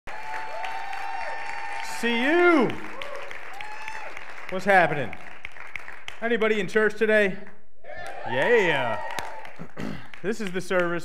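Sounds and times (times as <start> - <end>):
congregation applauding: 0.0 - 6.7, 8.0 - 11.0.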